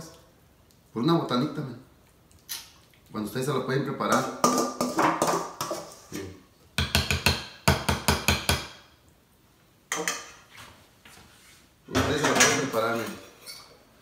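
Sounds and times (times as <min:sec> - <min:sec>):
utensil knocking metal bowl: 0:04.1 - 0:05.8.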